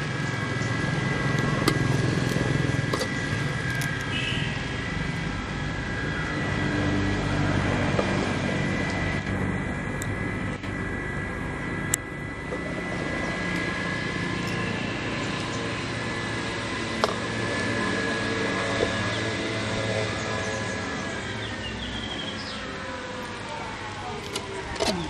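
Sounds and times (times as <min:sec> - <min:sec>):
motor drone with high whine: 0:00.0 - 0:25.0.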